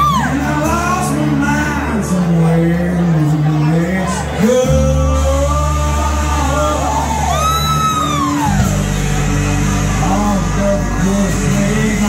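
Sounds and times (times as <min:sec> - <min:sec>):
live country band playing: 0:00.0 - 0:12.0.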